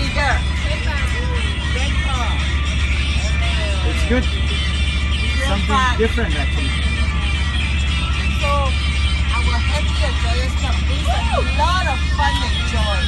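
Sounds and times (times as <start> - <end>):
bus engine drone: 0.0 - 13.0
music playing: 0.0 - 13.0
passengers calling out: 0.0 - 13.0.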